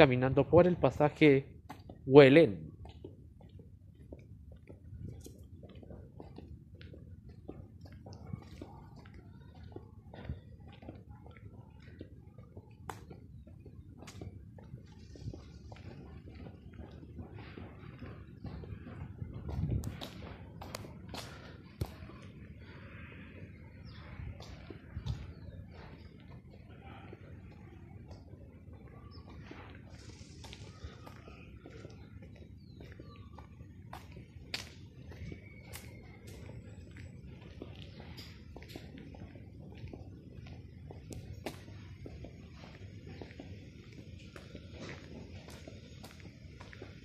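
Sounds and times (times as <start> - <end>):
steady low rumble: 0.4 - 47.0.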